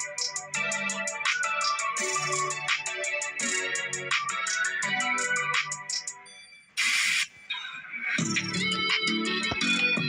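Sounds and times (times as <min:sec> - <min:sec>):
background music: 0:00.0 - 0:10.0
loud hiss-like burst: 0:06.8 - 0:07.3.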